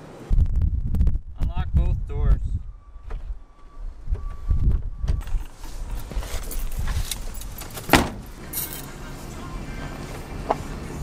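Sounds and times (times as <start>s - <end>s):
car door shutting: 4.1s - 8.4s
things being handled: 5.2s - 8.9s
keys jangling: 5.9s - 9.0s.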